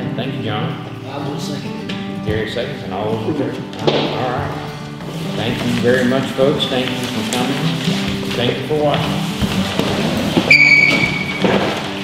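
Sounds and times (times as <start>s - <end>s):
music: 0.0s - 12.0s
shuffling: 3.3s - 12.0s
high sharp squeal: 10.5s - 11.4s.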